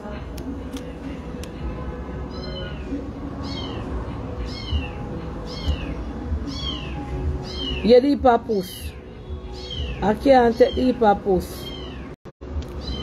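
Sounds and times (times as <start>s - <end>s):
background music with low beat: 0.0s - 11.6s.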